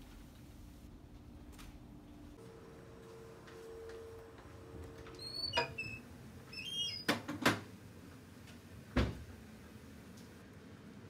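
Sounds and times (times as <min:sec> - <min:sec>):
door squeaking: 0:05.0 - 0:07.4
door knocks and clunks: 0:09.0 - 0:09.3.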